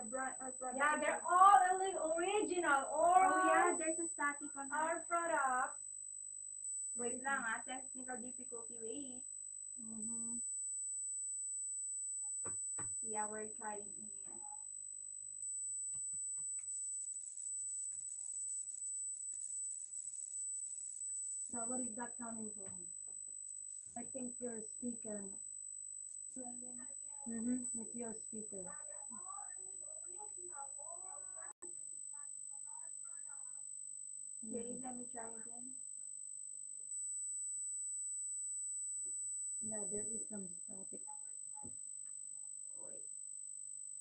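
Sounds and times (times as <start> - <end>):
high-pitched electronic whine: 0.0 - 5.7, 6.6 - 8.8
faint low hum: 0.0 - 5.8, 34.4 - 35.8, 39.6 - 41.8.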